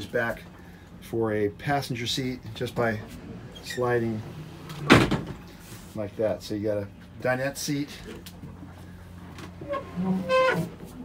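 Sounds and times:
backrest frame squeaking: 9.6 - 11.0.

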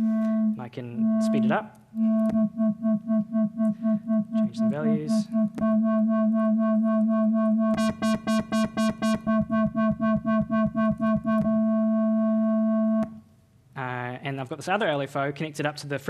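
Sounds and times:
wobbling buzzy synth tone: 0.0 - 13.2.

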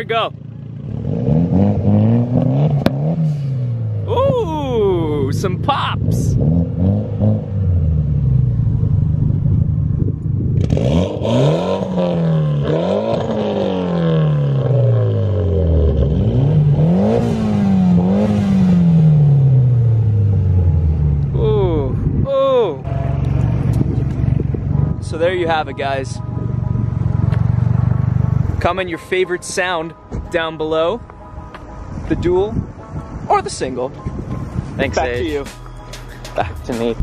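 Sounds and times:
car engine idling and revving: 0.0 - 37.0.

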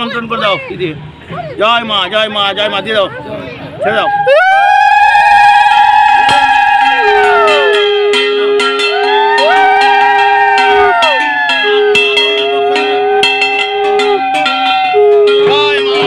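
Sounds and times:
conch shells blowing: 5.7 - 16.0
hand bell ringing rapidly: 6.8 - 16.0.

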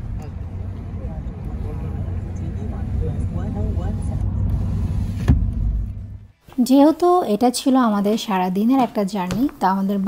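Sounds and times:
car road and engine rumble: 0.0 - 6.4.

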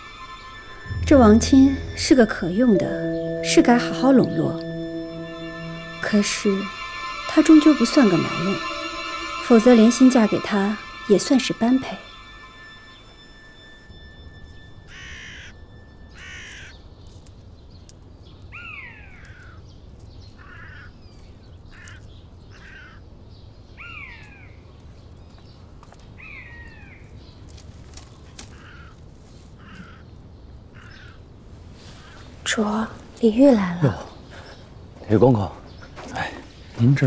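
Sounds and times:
faint low outdoor background: 0.0 - 17.4.

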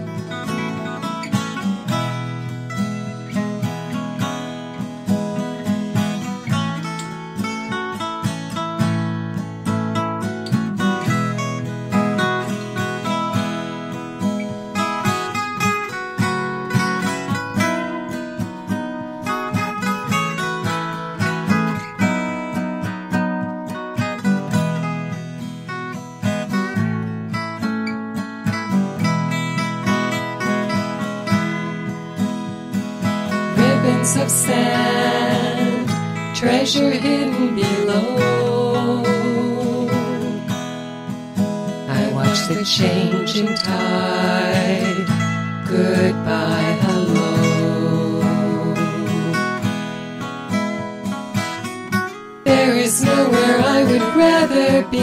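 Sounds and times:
acoustic guitar plucking: 0.0 - 55.0.

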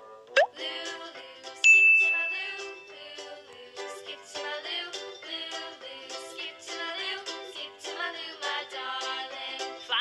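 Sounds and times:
cheerful background music: 0.0 - 10.0
bright bell ding: 1.6 - 2.5.

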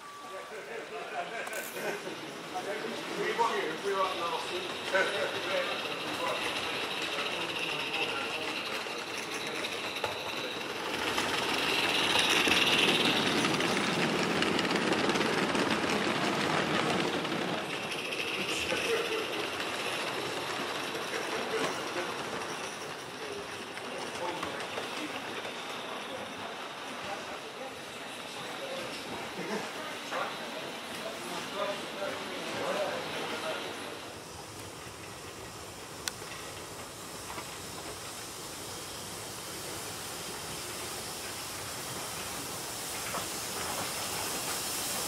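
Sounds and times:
model steam locomotive running: 0.0 - 45.0
steady steam hiss: 0.0 - 45.0.

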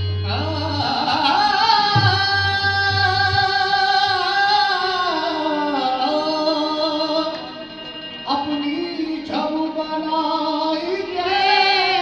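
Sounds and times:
harmonium: 0.0 - 12.0.

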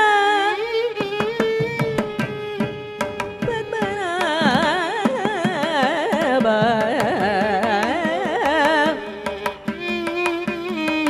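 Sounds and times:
violin accompaniment: 0.0 - 11.0
hand drum strokes: 1.2 - 11.0.

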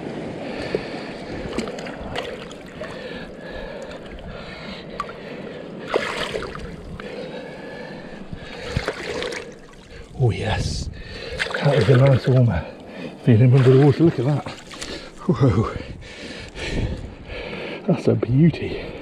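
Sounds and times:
water sloshing and splashing: 0.0 - 10.4, 11.0 - 15.6.

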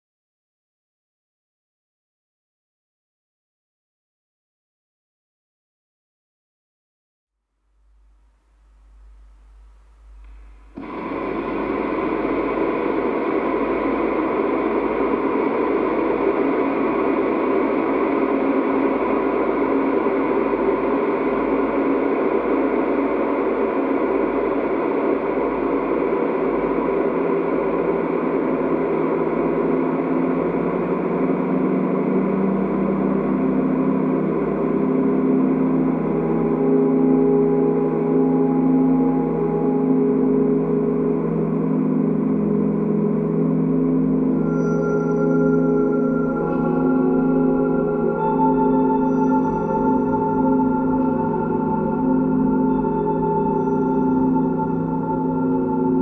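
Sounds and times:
steady low synth notes: 8.7 - 56.0
sustained metallic drone: 8.8 - 56.0.

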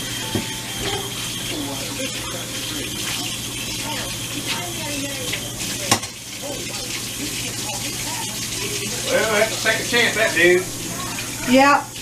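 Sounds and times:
dishes washed by hand: 0.0 - 12.0
faucet running: 0.0 - 12.0.

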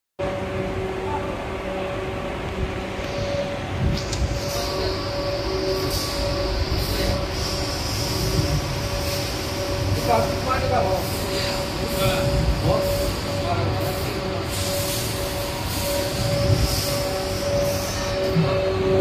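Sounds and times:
industrial machinery rumble: 0.2 - 19.0.

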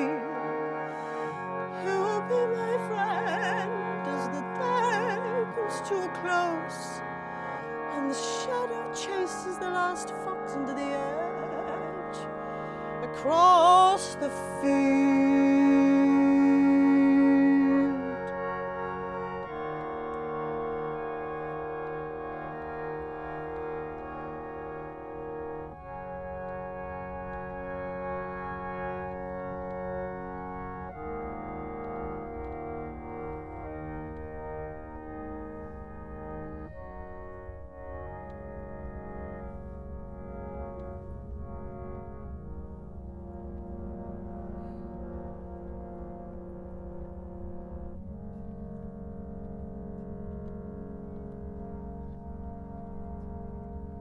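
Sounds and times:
wooden keyboard organ chords: 0.0 - 54.0.

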